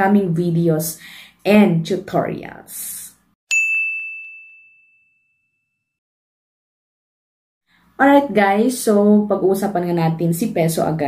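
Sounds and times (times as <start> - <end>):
bell-like ding: 3.5 - 6.0.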